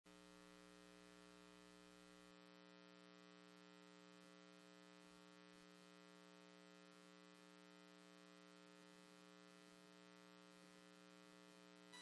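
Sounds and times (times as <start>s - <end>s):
faint electrical hum: 0.1s - 12.0s.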